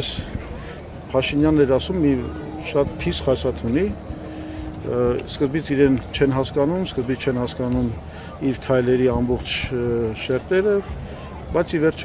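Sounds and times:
low steady hum: 0.2 - 8.6
man speaking: 1.1 - 4.0, 4.8 - 10.8.

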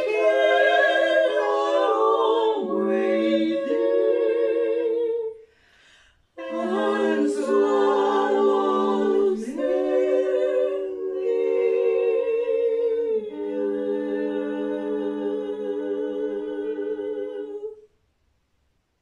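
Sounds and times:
women singing a cappella harmony: 0.0 - 17.9.

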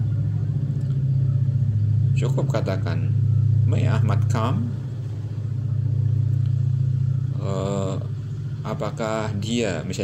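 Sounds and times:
loud low rumble: 0.0 - 10.0.

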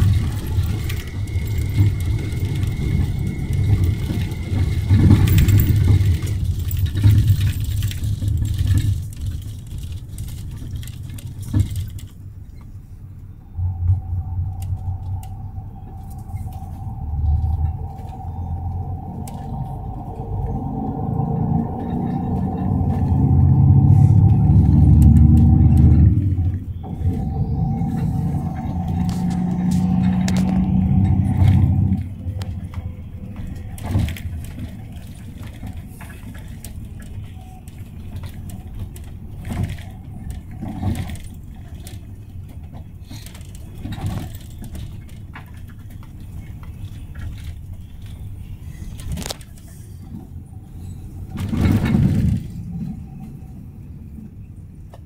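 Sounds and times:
steady whine: 0.0 - 8.8, 12.8 - 55.0
bus engine and road rumble: 0.0 - 55.0.

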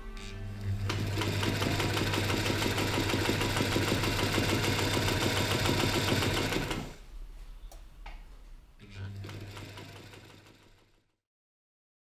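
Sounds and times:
sewing machine running: 0.5 - 7.0, 9.1 - 11.0.

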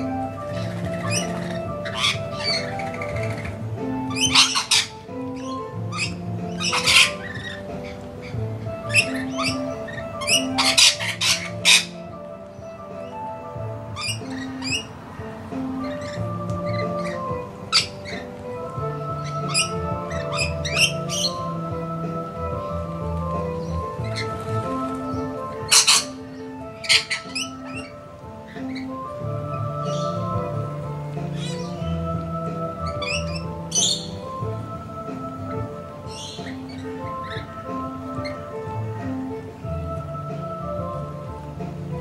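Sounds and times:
lorikeets screeching: 0.0 - 41.3
background music with held notes: 0.0 - 42.0.

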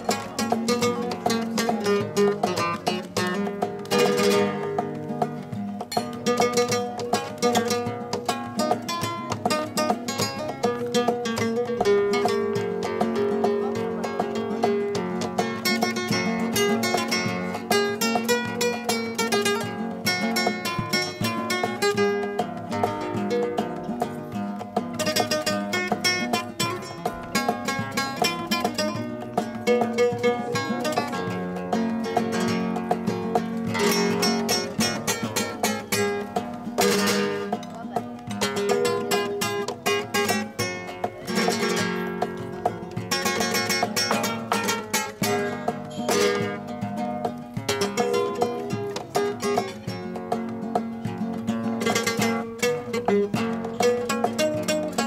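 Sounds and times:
flamenco guitars playing: 0.0 - 55.0.

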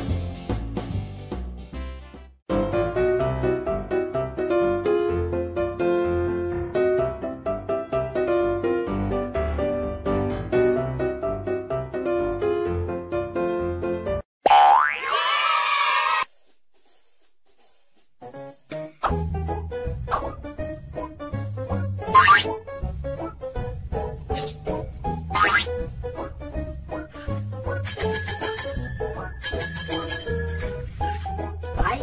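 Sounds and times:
desk service bell ringing: 27.9 - 30.9.

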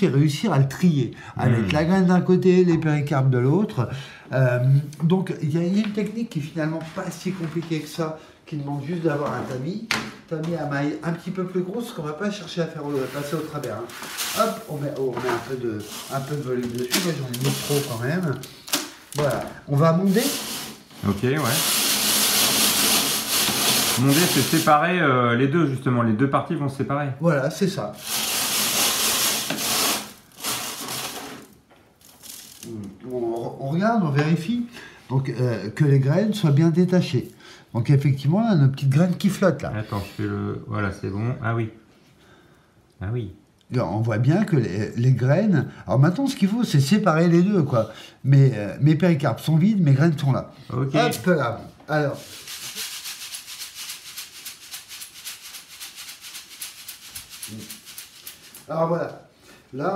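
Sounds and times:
peppercorns rubbed against sieve mesh: 12.8 - 18.6, 19.2 - 24.8, 28.0 - 31.5, 52.0 - 58.8.

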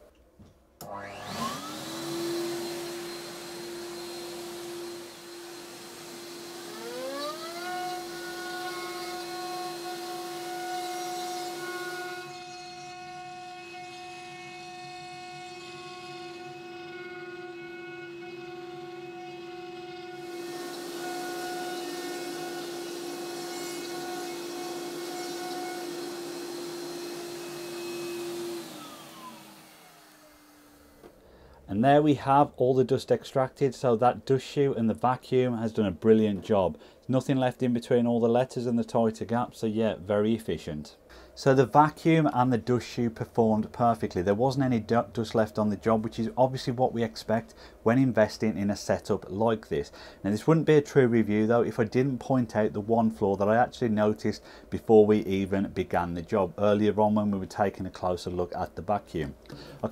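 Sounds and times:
higher vacuum whine: 0.8 - 10.7, 11.4 - 31.2
router spindle motor whine: 0.8 - 31.1.

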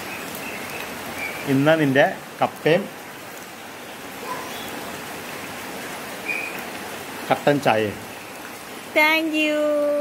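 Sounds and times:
rain falling on puddles: 0.0 - 10.0.

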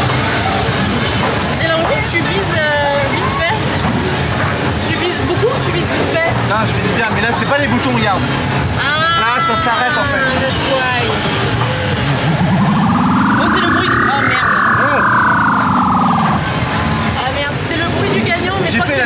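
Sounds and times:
fairground noise: 0.0 - 19.0
buzzy electronic tone: 12.0 - 16.6.

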